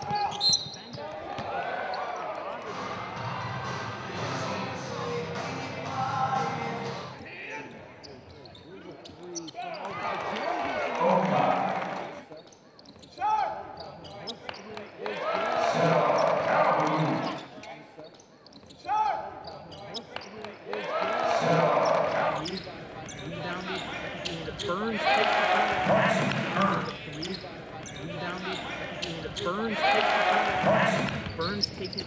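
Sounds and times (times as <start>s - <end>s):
sneakers squeaking on floor: 0.0s - 2.6s, 7.9s - 9.9s, 12.2s - 15.0s, 15.8s - 20.6s, 21.7s - 24.8s, 26.0s - 29.6s, 30.5s - 32.0s
echoing voices: 0.0s - 32.0s.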